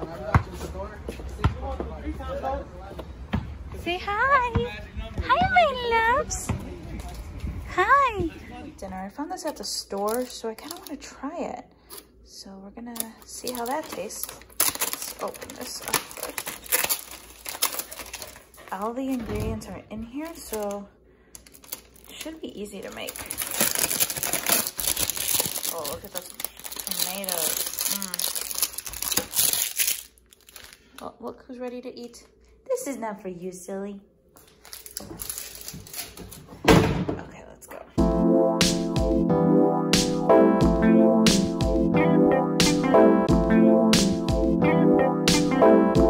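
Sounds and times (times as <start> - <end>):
plastic packaging crinkling: 9.8 - 11.0, 13.0 - 18.9, 20.2 - 31.0, 34.4 - 36.5.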